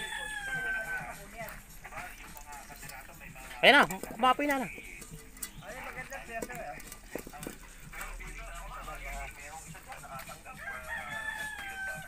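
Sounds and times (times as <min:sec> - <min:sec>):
rooster crowing: 0:00.0 - 0:01.2, 0:10.5 - 0:12.0.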